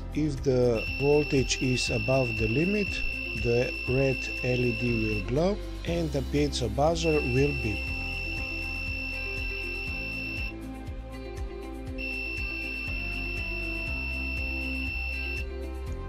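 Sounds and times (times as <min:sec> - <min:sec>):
buzzer warning tone: 0:00.8 - 0:05.3, 0:05.9 - 0:10.6, 0:12.0 - 0:15.5.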